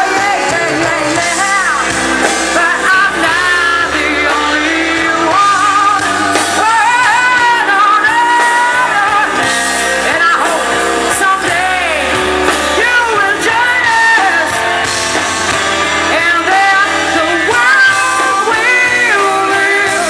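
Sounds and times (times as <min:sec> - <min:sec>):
woman singing: 0:00.0 - 0:14.8, 0:16.0 - 0:20.0
drums: 0:00.0 - 0:20.0
electric guitar: 0:00.0 - 0:20.0.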